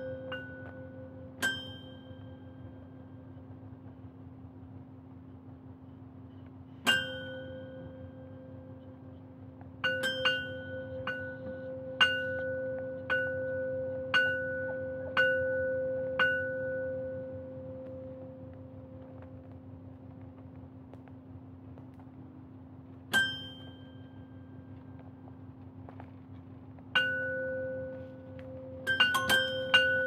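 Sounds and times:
steady low hum: 0.0 - 30.0
small metal bell ringing: 28.9 - 30.0.

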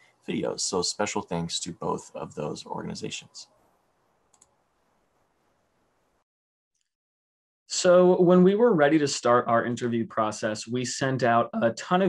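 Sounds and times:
faint clicks: 4.3 - 4.6.

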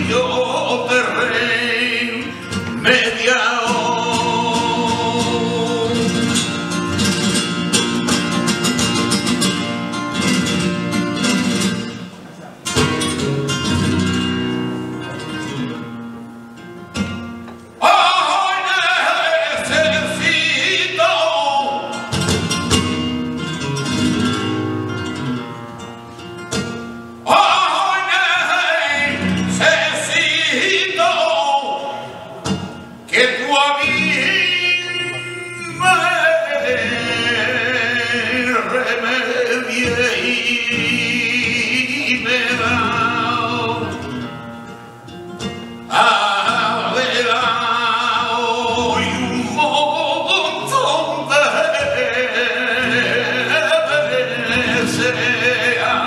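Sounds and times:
man singing melismatically: 0.0 - 10.6, 17.7 - 22.7, 26.8 - 44.6, 45.4 - 56.0
flamenco guitar: 0.0 - 56.0.

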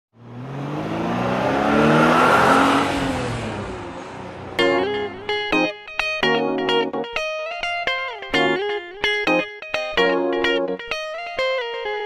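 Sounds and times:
car engine accelerating past: 0.2 - 5.2.

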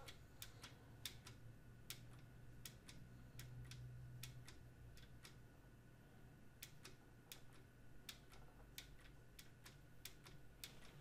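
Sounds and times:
computer keys tapping: 0.0 - 5.4, 6.5 - 11.0
faint low hum: 0.0 - 11.0.

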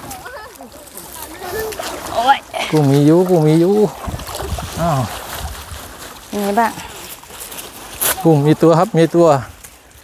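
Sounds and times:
water splashing and sloshing: 0.0 - 10.0.

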